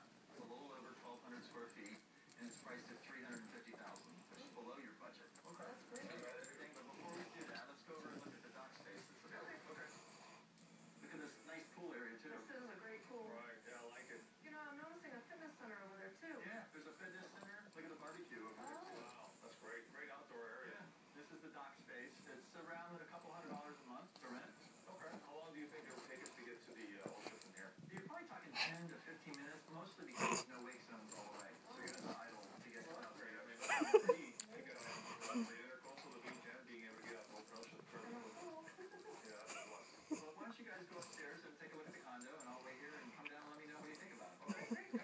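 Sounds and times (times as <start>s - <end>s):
dogs playing: 0.0s - 14.4s, 16.4s - 45.0s
quiet television voices: 0.0s - 45.0s.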